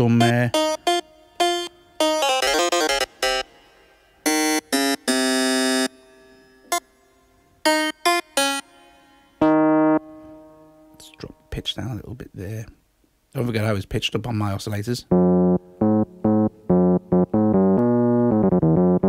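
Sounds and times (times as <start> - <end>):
pitched-up sampled piano notes: 0.0 - 11.6, 15.1 - 19.0.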